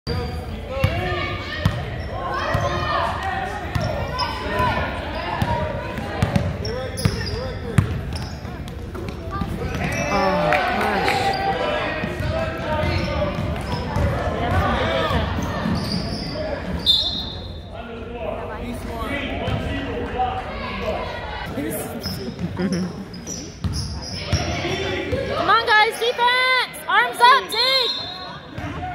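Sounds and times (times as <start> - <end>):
spectators chattering: 0.1 - 28.9.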